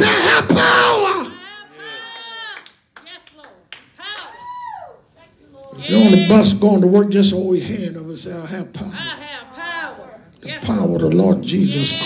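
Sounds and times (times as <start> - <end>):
people calling out: 0.0 - 2.6, 5.7 - 6.6
sharp hand claps: 2.6 - 4.3.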